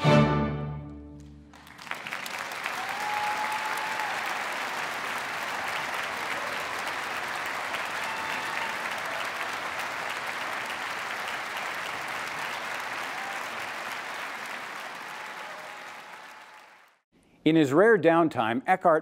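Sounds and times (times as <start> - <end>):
audience applauding: 1.2 - 17.0.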